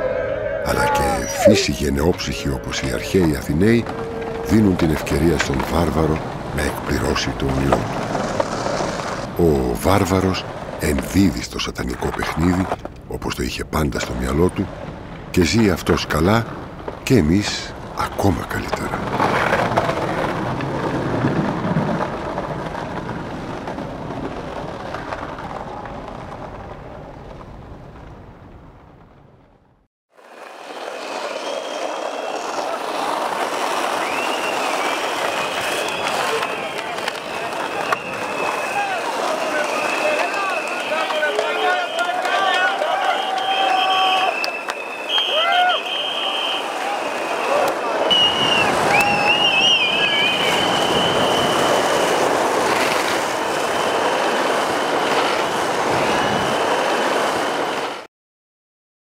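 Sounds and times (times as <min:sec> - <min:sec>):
high whistles: 0:00.0 - 0:04.5, 0:30.6 - 0:32.8, 0:33.8 - 0:52.3, 0:53.5 - 0:55.1
street crowd hubbub: 0:00.0 - 0:05.3, 0:35.3 - 0:51.3
skateboard wheels on asphalt: 0:00.0 - 0:13.2, 0:14.2 - 0:28.3, 0:30.1 - 0:58.1.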